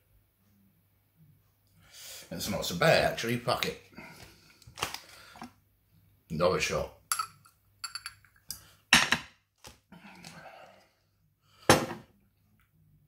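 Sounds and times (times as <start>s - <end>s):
glass bottle and glass clinking: 7.1s - 8.4s.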